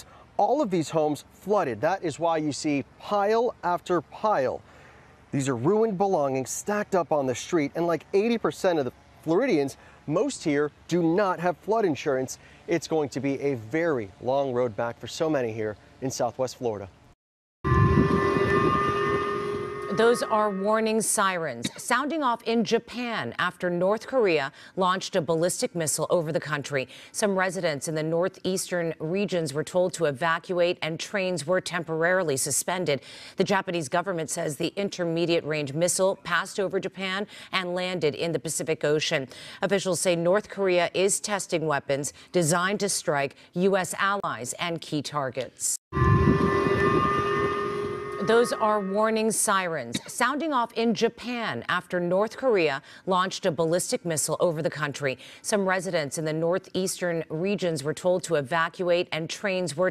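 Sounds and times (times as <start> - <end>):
low rumbling noise: 17.7 - 21.2, 45.9 - 49.4
warning sirens held chord: 17.7 - 21.4, 45.9 - 49.6.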